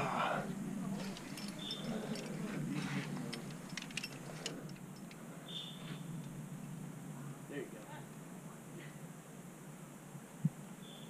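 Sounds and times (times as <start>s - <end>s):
carabiners clinking on harness: 1.0s - 5.2s.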